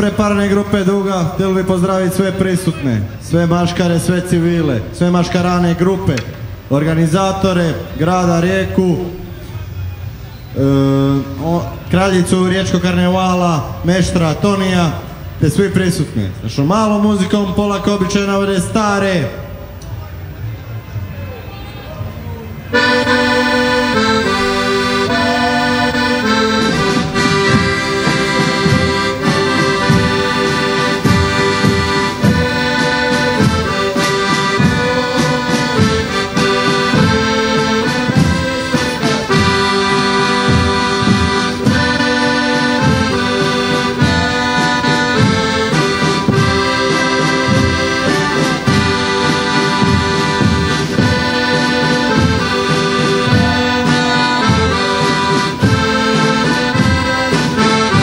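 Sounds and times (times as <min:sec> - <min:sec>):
piano accordion playing chords: 0:00.0 - 0:09.3, 0:22.7 - 0:58.0
marching drums beating: 0:22.7 - 0:58.0.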